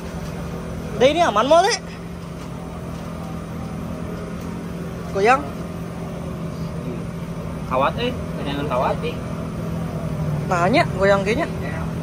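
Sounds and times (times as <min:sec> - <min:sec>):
engine drone: 0:00.0 - 0:12.0.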